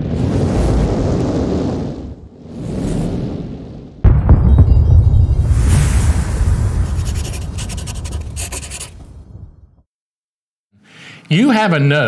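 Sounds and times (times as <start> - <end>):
deep boom rumble: 4.0 - 7.7
pen scratching on paper: 6.8 - 9.1.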